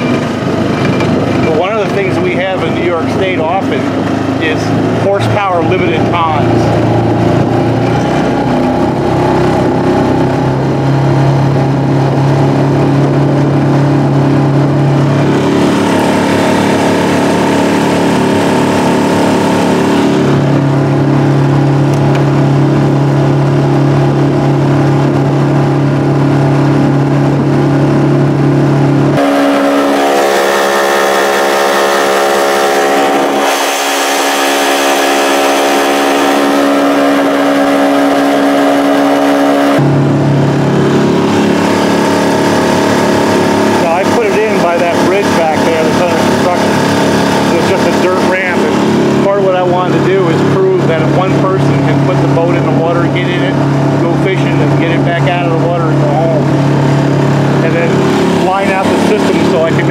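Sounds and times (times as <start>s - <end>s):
water and wind noise: 0.0s - 29.2s, 39.8s - 59.9s
outboard motor running: 0.0s - 59.9s.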